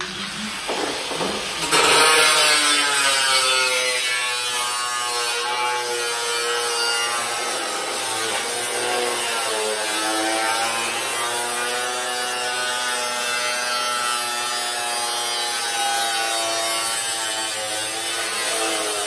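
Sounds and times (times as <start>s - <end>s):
angle grinder cutting metal sheet: 0.0s - 19.0s.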